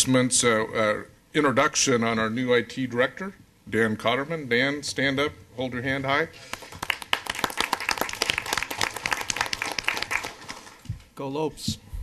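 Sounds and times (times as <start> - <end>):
people applauding: 6.5 - 10.9.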